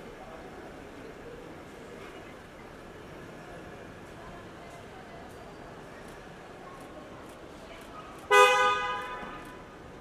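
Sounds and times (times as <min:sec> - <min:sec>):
car horn beep: 0:08.3 - 0:09.3.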